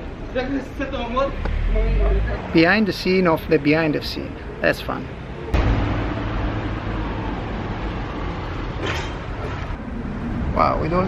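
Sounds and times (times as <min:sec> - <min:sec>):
traffic noise: 0:00.0 - 0:11.0
large vehicle engine rumbling: 0:05.3 - 0:10.6.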